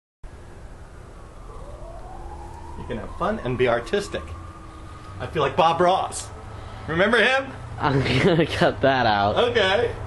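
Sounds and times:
faint rising tone: 0.3s - 7.8s
man speaking: 2.8s - 4.4s, 5.2s - 10.0s.

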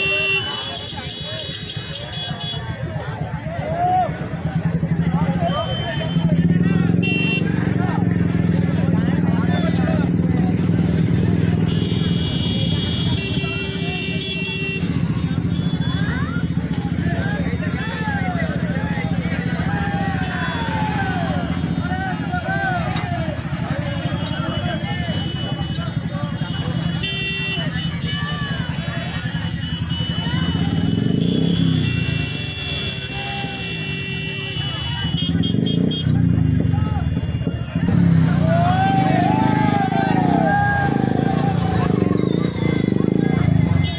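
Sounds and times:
crowd shouting: 0.0s - 43.9s
motorcycle engines idling: 0.0s - 43.9s.

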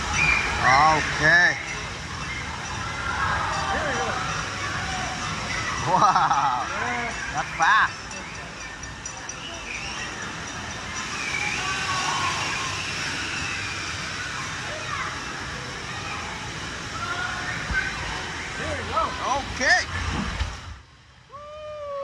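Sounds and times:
distant crowd shouts and chatter: 0.0s - 20.0s
water rushing through slide: 9.2s - 22.0s.

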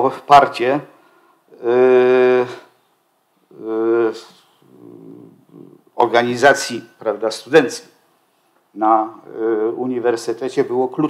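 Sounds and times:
man speaking: 0.0s - 0.9s, 1.5s - 2.7s, 3.5s - 8.0s, 8.8s - 11.0s
man's drawn-out hesitation: 3.5s - 7.3s
man humming creakily: 4.6s - 5.9s.

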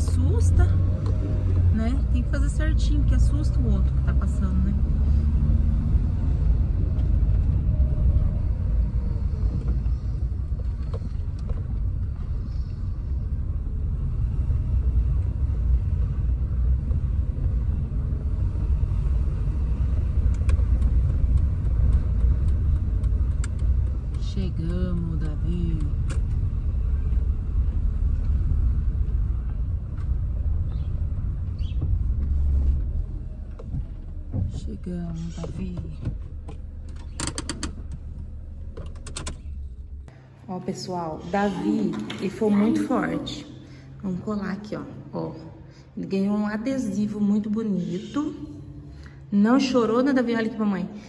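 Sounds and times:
car engine and tyres rumbling: 0.0s - 51.0s.

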